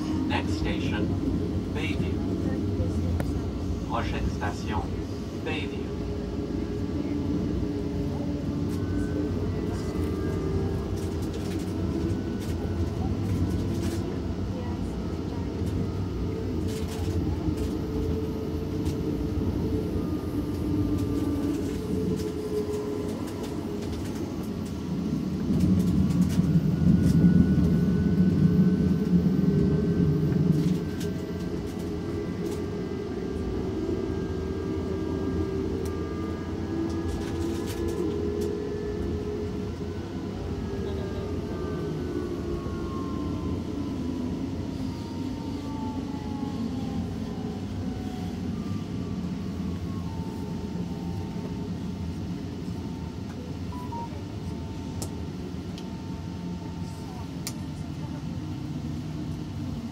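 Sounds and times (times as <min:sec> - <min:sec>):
train wheels rumbling on rail: 0:06.1 - 0:42.8.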